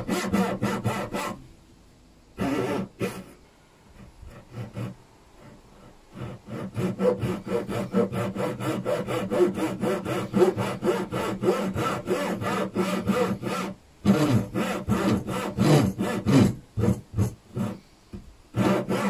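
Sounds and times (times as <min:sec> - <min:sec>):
saw cutting wood: 0:00.0 - 0:01.4, 0:02.4 - 0:03.4, 0:04.0 - 0:17.8, 0:18.6 - 0:19.0.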